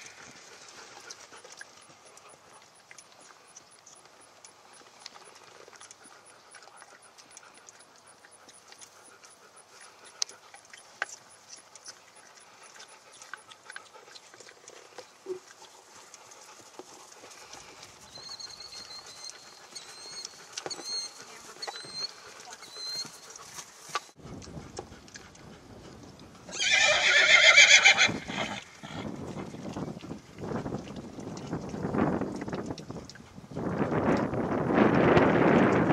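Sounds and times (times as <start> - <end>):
horse hoofbeats on grass: 10.8 - 35.9
horse whinnying: 26.5 - 29.1.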